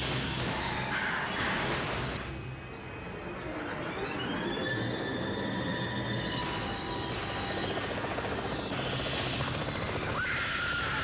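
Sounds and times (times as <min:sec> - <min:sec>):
helicopter rotor blades chopping: 0:06.4 - 0:11.0.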